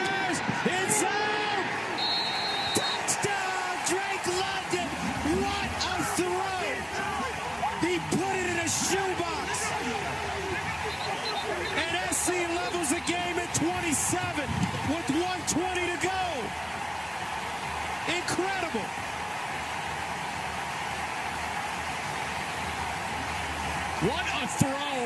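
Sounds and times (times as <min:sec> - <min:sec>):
men shouting and cheering: 0:00.0 - 0:25.0.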